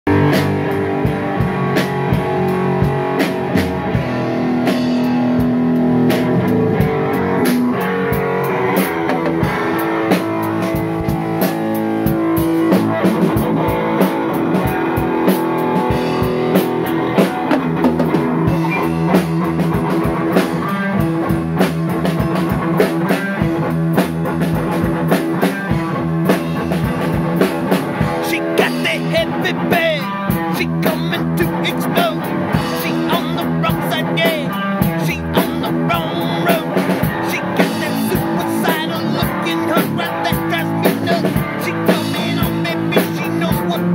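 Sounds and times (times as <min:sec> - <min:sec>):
drum kit beat: 0:00.1 - 0:43.9
rock band playing: 0:00.1 - 0:43.9
sustained guitar notes: 0:00.1 - 0:43.9.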